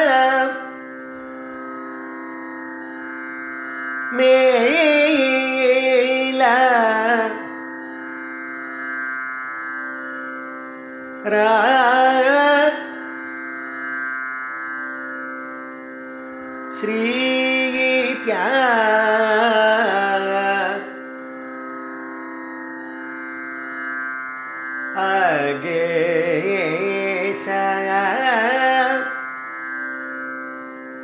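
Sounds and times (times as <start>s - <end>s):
tanpura drone: 0.0s - 31.0s
person singing: 25.0s - 29.2s.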